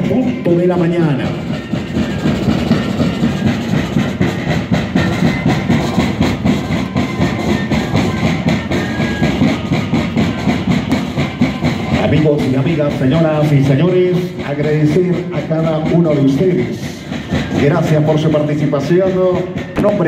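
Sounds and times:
steady drum beat: 0:00.0 - 0:20.0
cane flutes playing together: 0:00.3 - 0:20.0.

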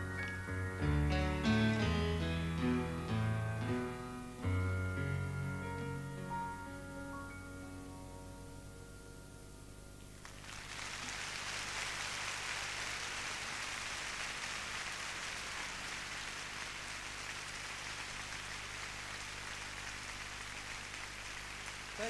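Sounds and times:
music: 0:00.0 - 0:10.2
audience applauding: 0:10.2 - 0:22.0.

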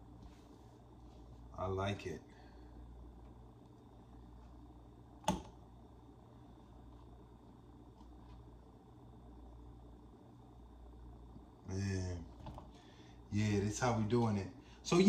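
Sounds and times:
low kitchen hum: 0:00.0 - 0:15.0.

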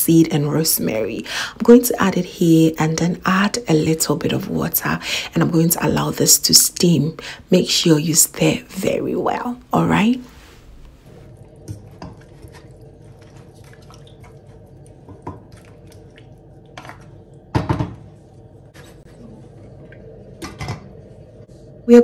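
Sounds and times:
steady low hum: 0:00.0 - 0:22.0
wooden spoon scraping pot: 0:11.2 - 0:15.8.

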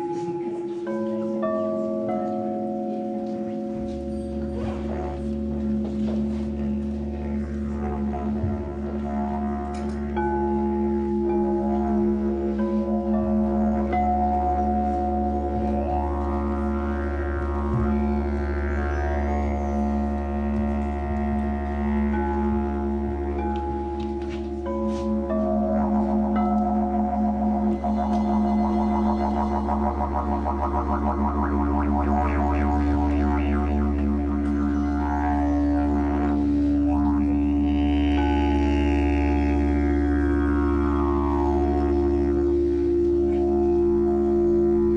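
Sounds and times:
singing bowls ringing: 0:00.0 - 0:06.8, 0:09.7 - 0:20.7, 0:22.0 - 0:36.8
didgeridoo drone: 0:00.0 - 0:44.9.

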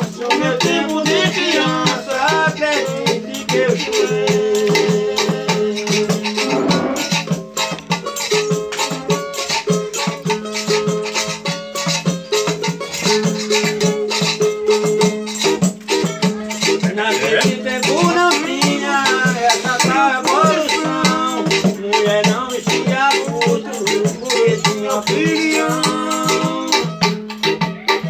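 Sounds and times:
man singing: 0:00.0 - 0:07.2, 0:16.6 - 0:27.0
jingling tambourines: 0:00.0 - 0:28.0
strummed small guitar: 0:00.0 - 0:28.0.

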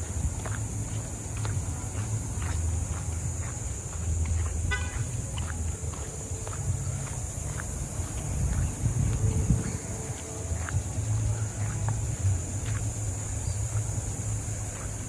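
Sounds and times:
footsteps walking: 0:00.0 - 0:15.0
low microphone rumble: 0:00.0 - 0:15.0.

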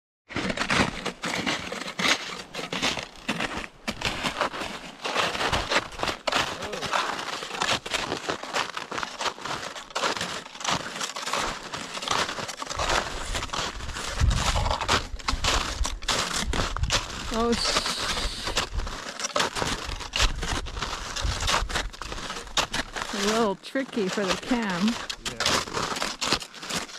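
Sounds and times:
snowshoe footsteps crunching snow: 0:00.3 - 0:26.9.

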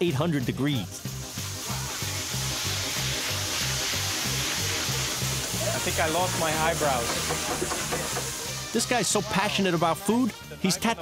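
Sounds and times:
oil sizzling: 0:00.3 - 0:10.6
fire hissing: 0:00.9 - 0:10.0.

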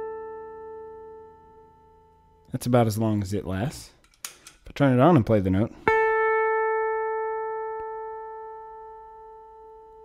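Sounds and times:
electric guitar note ringing: 0:00.0 - 0:02.5, 0:05.8 - 0:10.0.

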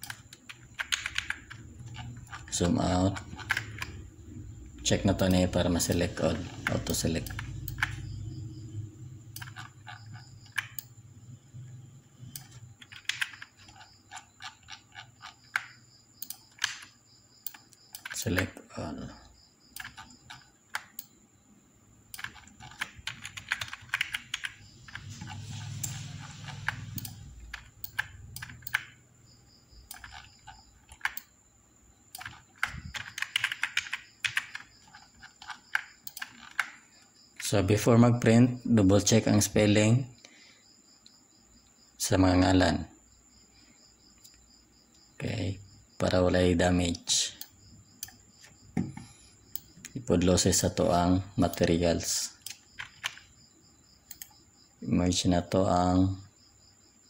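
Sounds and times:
keyboard and mouse clicking: 0:00.0 - 0:04.0, 0:05.2 - 0:08.1, 0:09.3 - 0:10.9, 0:12.3 - 0:18.5, 0:19.7 - 0:21.1, 0:22.1 - 0:29.0, 0:29.8 - 0:31.3, 0:32.2 - 0:36.8, 0:52.4 - 0:53.3, 0:54.1 - 0:54.4.

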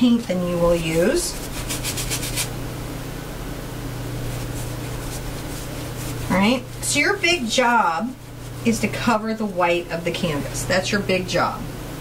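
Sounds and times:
steady low hum: 0:00.0 - 0:12.0
paintbrush scrubbing on canvas: 0:00.5 - 0:02.6, 0:04.1 - 0:10.9.

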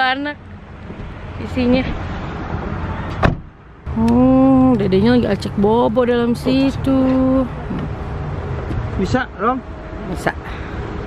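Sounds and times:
sharp knock on car door: 0:03.2 - 0:03.5.

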